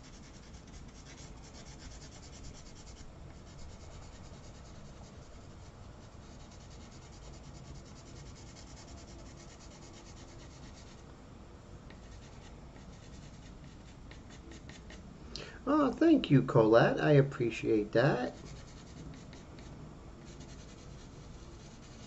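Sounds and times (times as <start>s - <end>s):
pastel pencil rubbing on paper: 0.0s - 11.0s, 11.9s - 15.0s, 18.3s - 22.0s.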